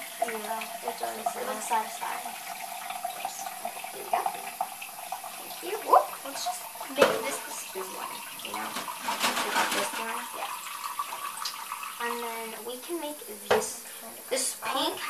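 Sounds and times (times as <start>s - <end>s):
faucet running into sink: 0.0s - 15.0s
water splashing over plastic cup: 0.0s - 15.0s.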